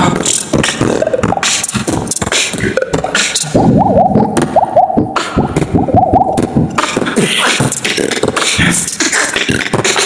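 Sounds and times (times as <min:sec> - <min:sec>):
beatboxed bass beat: 0:00.0 - 0:10.0
beatboxed hi-hat and snare: 0:00.0 - 0:10.0
beatboxing water-drop pops: 0:00.0 - 0:10.0.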